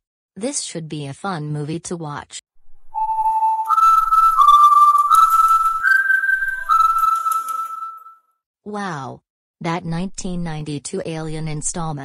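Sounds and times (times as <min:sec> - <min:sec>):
whistled melody: 0:02.9 - 0:08.4.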